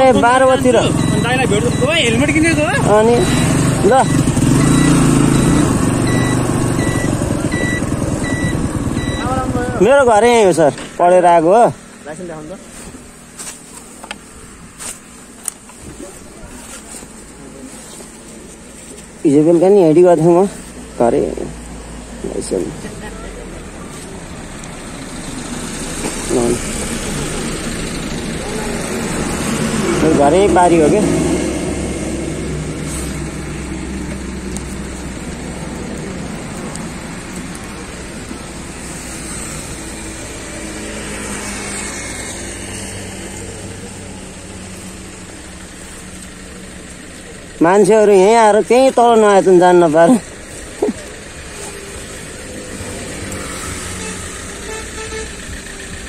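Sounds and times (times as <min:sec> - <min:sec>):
engine running at low revs: 0:00.0 - 0:10.7, 0:20.2 - 0:56.0
low rumble of vehicles: 0:00.0 - 0:56.0
traffic noise: 0:00.0 - 0:56.0.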